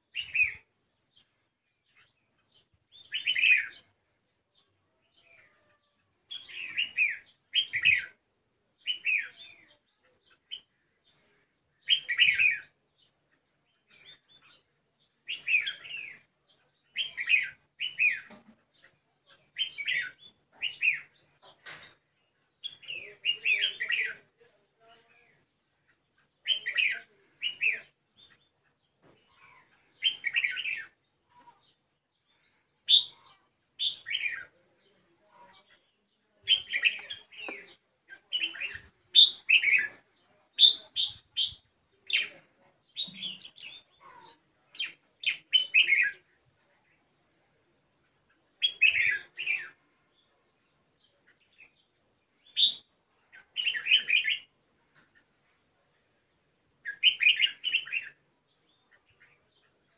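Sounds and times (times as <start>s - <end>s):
bird chirping song: 0.0s - 59.9s.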